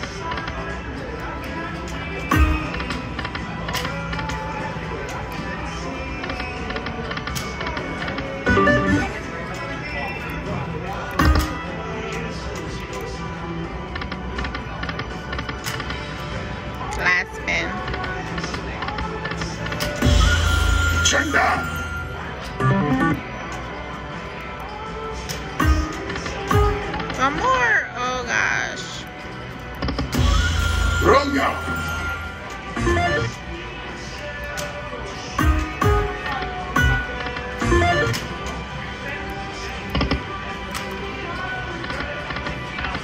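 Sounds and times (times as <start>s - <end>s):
casino voices: 5.0s - 14.1s, 20.9s - 24.6s, 30.3s - 43.0s
slot machine music and jingles: 8.3s - 10.1s, 19.9s - 24.6s, 25.6s - 33.7s, 35.4s - 38.4s
slot machine held tones: 8.4s - 9.2s, 20.0s - 23.3s, 30.2s - 33.4s, 36.8s - 38.2s
slot machine chime notes: 8.5s - 9.2s, 20.0s - 23.2s, 30.2s - 33.4s, 36.8s - 38.2s.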